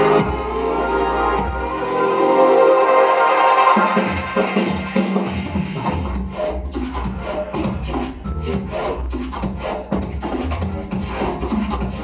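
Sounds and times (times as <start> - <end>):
deep sub-bass: 0.0 - 2.1, 4.0 - 12.0
pulsing wobble bass: 0.0 - 2.3.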